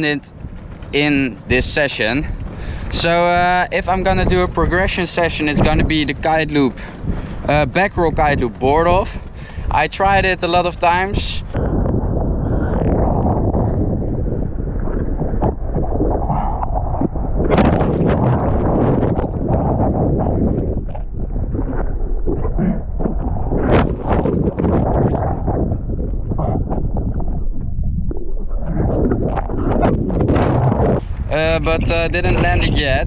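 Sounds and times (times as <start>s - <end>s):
wind buffeting microphone: 0.0s - 33.0s.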